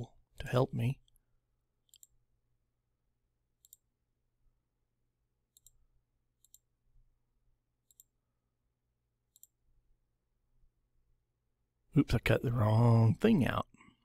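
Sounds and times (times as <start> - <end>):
faint mouse clicks: 1.8 - 2.2, 3.6 - 3.9, 5.5 - 5.8, 6.4 - 6.7, 7.8 - 8.2, 9.3 - 9.6.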